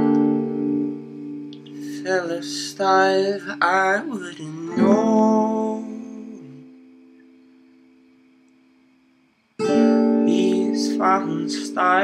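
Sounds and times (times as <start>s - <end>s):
acoustic guitar strum: 0.0s - 8.7s, 9.6s - 12.0s
acoustic guitar chord ringing: 0.0s - 8.8s, 9.6s - 12.0s.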